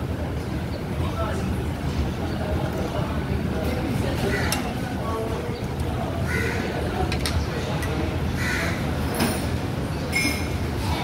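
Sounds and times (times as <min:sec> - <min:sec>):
food court background noise: 0:00.0 - 0:11.0.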